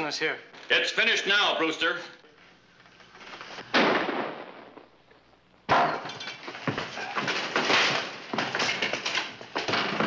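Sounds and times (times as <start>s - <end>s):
gunfire crashes: 3.7s - 4.9s
breaking glass clatter: 5.7s - 10.0s.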